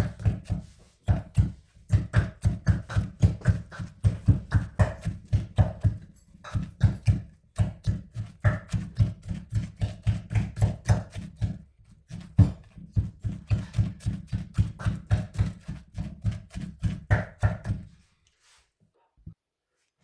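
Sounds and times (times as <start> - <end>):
pestle pounding in mortar: 0.0 - 17.9.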